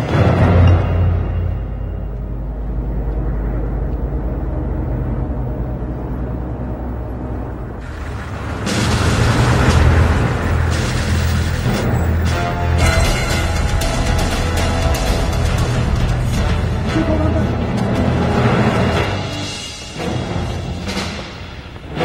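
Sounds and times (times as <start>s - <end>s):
low droning score: 0.0s - 22.0s
jeeps driving in: 0.2s - 22.0s.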